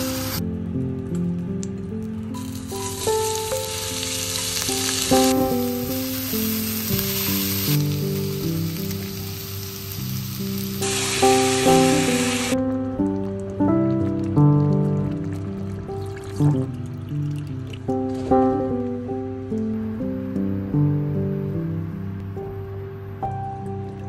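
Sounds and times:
vegetables sizzling in oil: 0.0s - 0.4s, 2.3s - 12.6s
soft background music: 0.0s - 24.0s.

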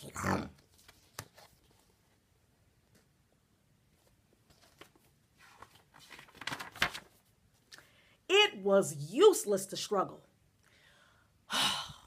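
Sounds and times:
book handling rustling: 0.6s - 2.2s, 3.9s - 7.7s.

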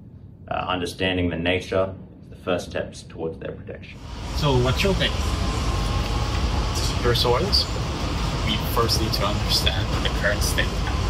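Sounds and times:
faint steady whine: 0.0s - 11.0s
even hiss: 3.9s - 11.0s
train carriage rumble: 4.0s - 11.0s.

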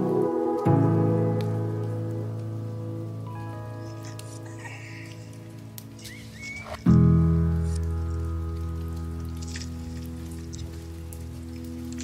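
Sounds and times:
light crackle: 0.0s - 12.0s.

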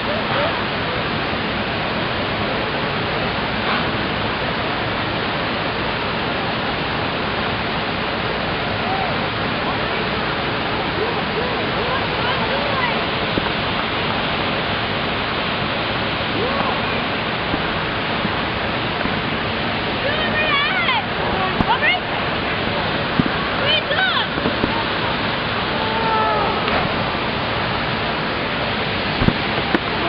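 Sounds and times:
waterfall rushing: 0.0s - 30.0s.

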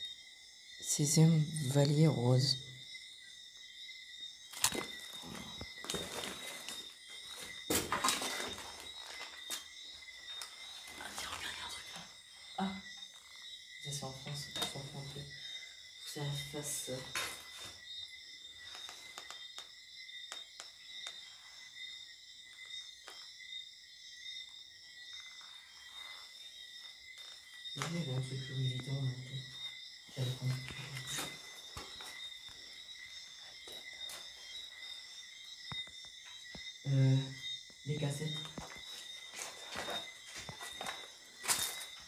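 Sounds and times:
objects being shuffled: 4.6s - 9.6s
paper rustling: 4.6s - 9.7s.

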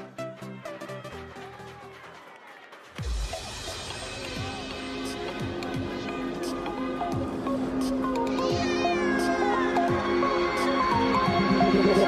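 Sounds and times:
hip hop music: 0.0s - 12.0s
meow-like cry: 8.2s - 10.8s.

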